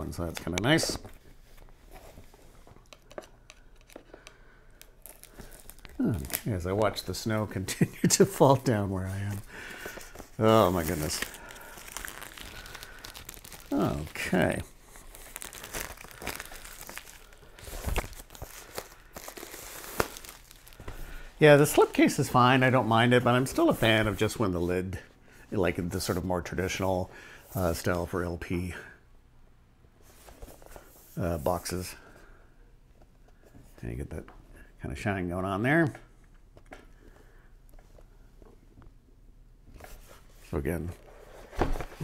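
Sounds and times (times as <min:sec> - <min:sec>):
plastic shrink wrap crinkling: 0:02.0 - 0:24.3.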